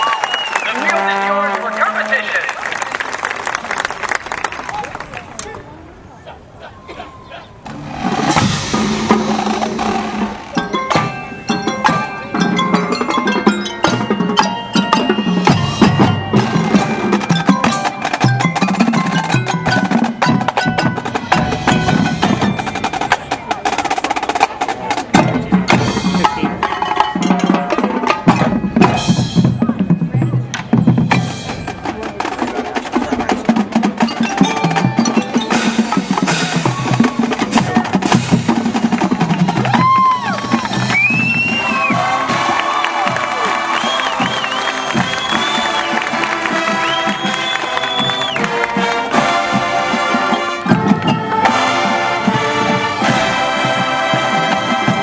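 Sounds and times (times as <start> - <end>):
marching band playing: 0.0 - 55.0
sharp percussion strikes: 6.9 - 55.0
high sliding whistles: 40.9 - 42.0, 43.7 - 48.5.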